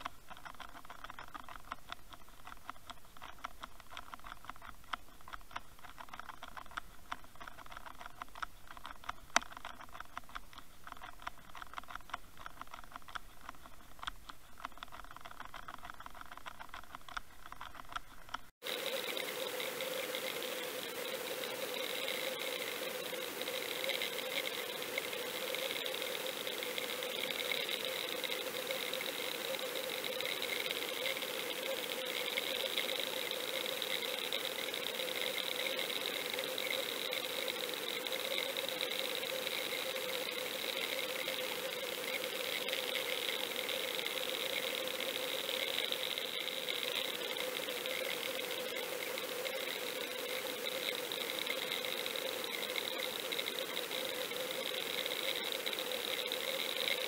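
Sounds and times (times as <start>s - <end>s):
constant hum: 0.0s - 57.0s.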